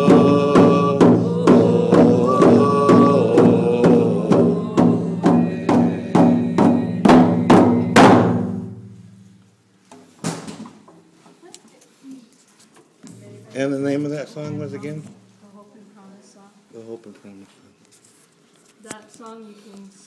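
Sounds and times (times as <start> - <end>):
people singing: 0.0 - 8.7
frame drums beaten: 0.0 - 9.3.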